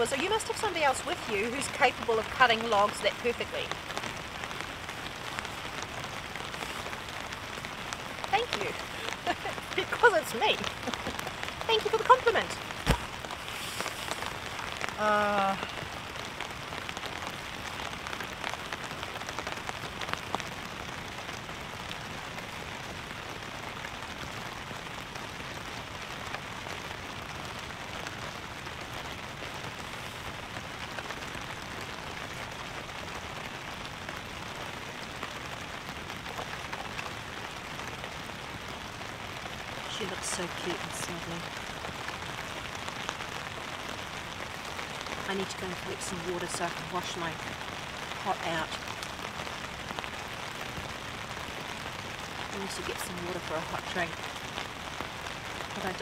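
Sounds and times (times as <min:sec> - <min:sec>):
rain pattering on a tarp: 0:00.0 - 0:56.0.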